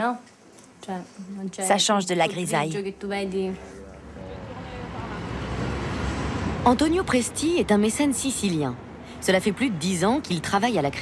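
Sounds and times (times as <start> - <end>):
vehicle approaching: 3.2 - 11.0.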